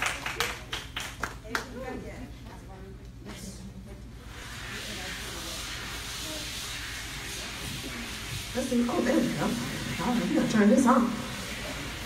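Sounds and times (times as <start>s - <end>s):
sound system hiss: 4.3s - 12.0s.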